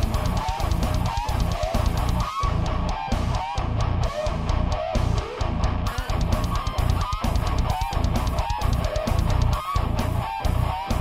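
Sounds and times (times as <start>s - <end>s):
distorted electric guitar riff: 0.0s - 11.0s
guitar squealing notes: 0.0s - 11.0s.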